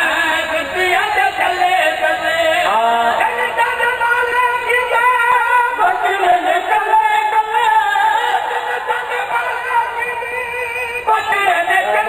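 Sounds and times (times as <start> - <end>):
man singing through loudspeakers: 0.0 - 12.0.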